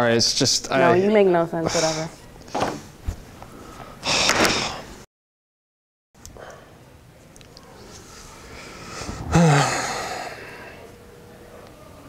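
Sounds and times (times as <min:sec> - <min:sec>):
person sighing: 0:09.2 - 0:10.7.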